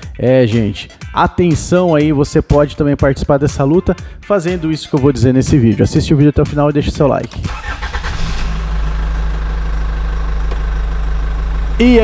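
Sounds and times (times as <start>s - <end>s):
car engine idling: 7.5s - 12.0s.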